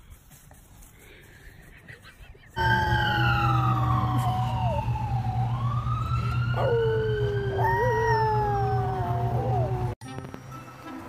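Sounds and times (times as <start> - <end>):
dog howling: 2.6 - 10.0
wailing siren: 2.6 - 10.0.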